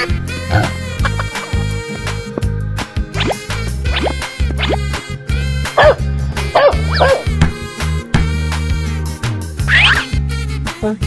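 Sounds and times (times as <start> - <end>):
background music with steady beat: 0.0 - 11.0
dog barking: 5.8 - 7.4.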